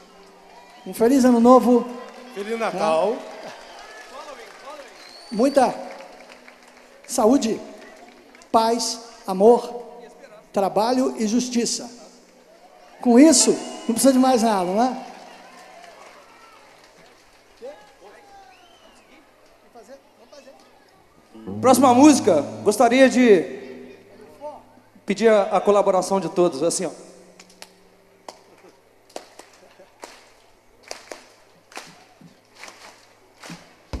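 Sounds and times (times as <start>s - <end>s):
crowd clapping in time: 0.0s - 10.0s, 13.1s - 19.7s, 27.4s - 33.7s
distant crowd murmur: 12.0s - 25.9s.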